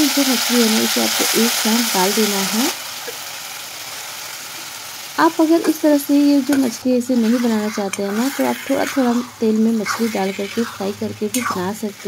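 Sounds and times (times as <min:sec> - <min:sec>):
fish sizzling in hot oil: 0:00.0 - 0:12.0.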